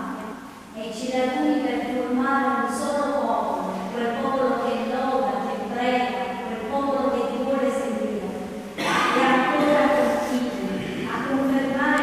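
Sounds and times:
congregation praying in unison: 8.8 - 12.0.

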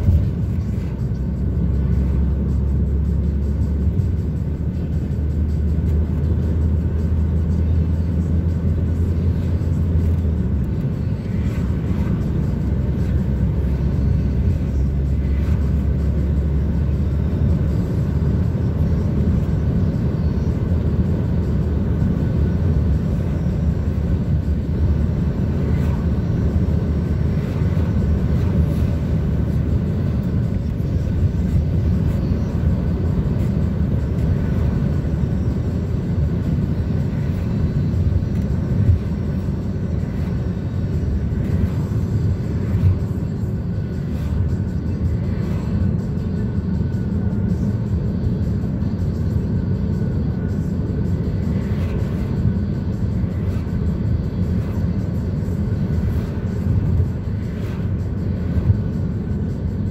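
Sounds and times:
vehicle tyres and engine rumble: 0.0 - 59.9.

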